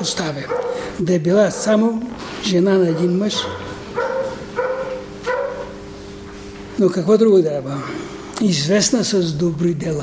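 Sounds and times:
dog barking: 0.4 - 1.9, 2.8 - 5.8.

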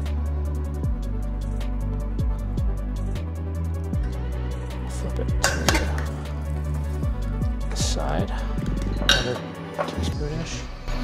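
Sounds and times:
background music with steady beat: 0.0 - 11.0
tongs clinking on metal pot: 5.4 - 6.1.

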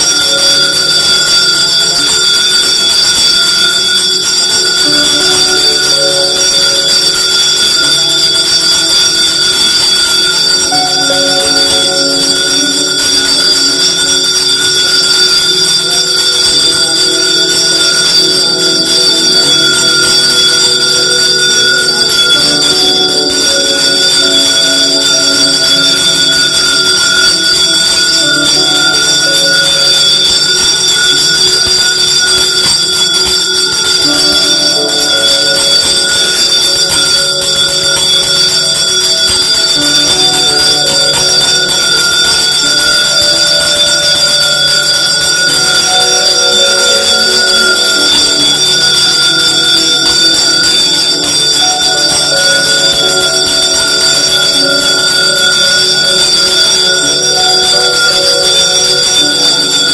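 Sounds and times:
temple bells ringing: 0.0 - 59.9.

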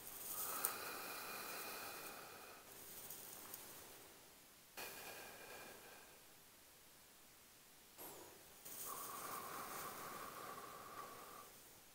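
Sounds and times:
person exhaling hard: 4.8 - 6.2, 8.8 - 11.6.

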